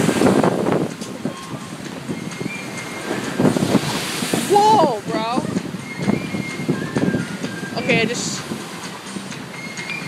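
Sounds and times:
gusty wind buffeting microphone: 0:00.0 - 0:09.7.

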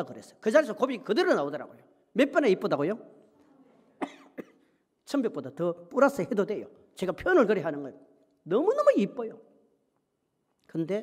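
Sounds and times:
person coughing: 0:04.0 - 0:04.8.

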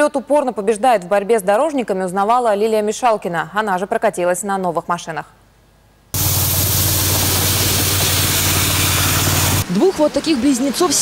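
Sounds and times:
low engine hum: 0:06.2 - 0:09.7.

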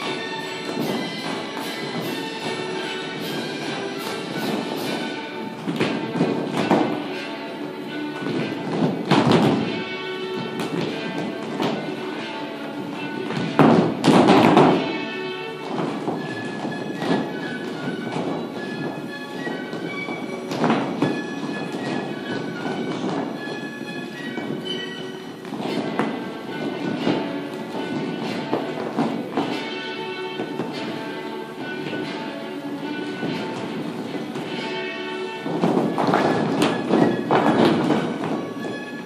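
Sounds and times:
heeled shoes stepping on floor: 0:00.0 - 0:07.2, 0:07.9 - 0:39.0
dance music with held notes: 0:00.0 - 0:39.0.

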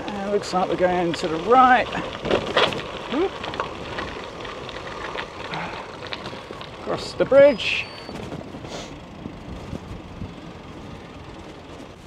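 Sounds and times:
bike tyres crunching on gravel: 0:00.0 - 0:12.0
small clicks of stones: 0:01.9 - 0:06.8.

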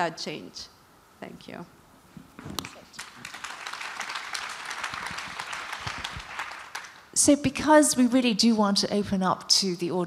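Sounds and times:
audience applauding: 0:02.6 - 0:07.1.

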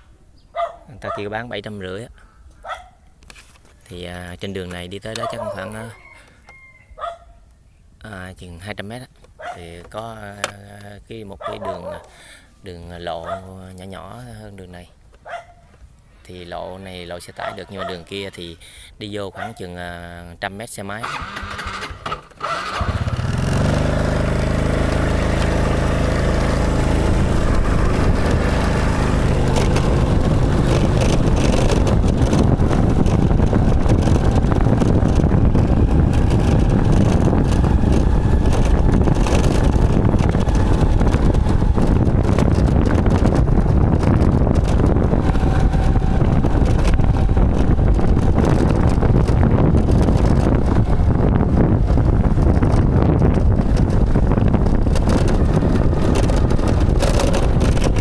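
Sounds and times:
motorbike engine pulling away: 0:21.0 - 0:58.0
wind buffeting microphone: 0:22.8 - 0:58.0.

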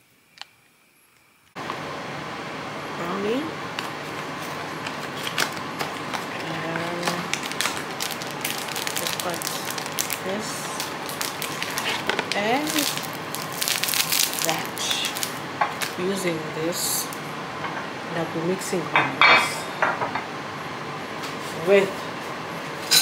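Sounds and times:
cardboard box and pouch crinkling: 0:04.8 - 0:16.0.

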